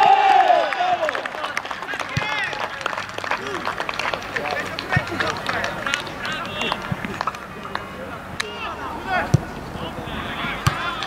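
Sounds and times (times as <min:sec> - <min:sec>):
players shouting: 0:00.0 - 0:11.0
sharp claps: 0:01.0 - 0:08.5.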